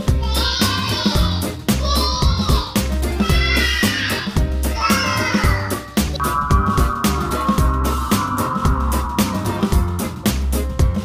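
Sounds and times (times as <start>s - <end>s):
upbeat music with low thumps: 0.0s - 11.0s
falling high tone: 6.2s - 10.5s.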